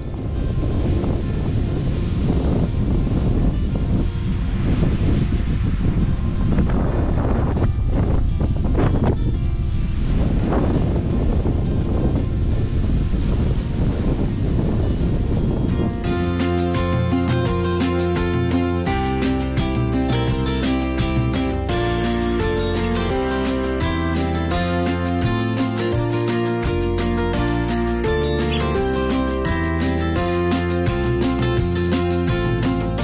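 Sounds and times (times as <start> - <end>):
wind buffeting microphone: 0.0 - 22.1
music: 0.0 - 33.0.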